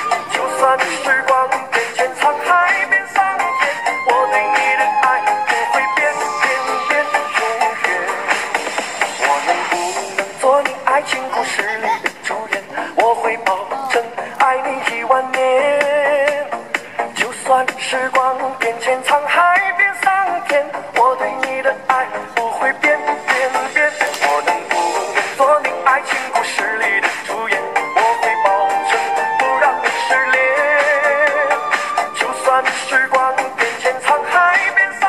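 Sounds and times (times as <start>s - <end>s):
pop dance song with vocals: 0.0s - 35.0s.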